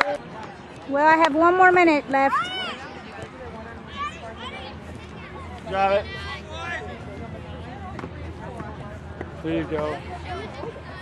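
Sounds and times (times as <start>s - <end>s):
players and spectators shouting: 2.2s - 3.2s.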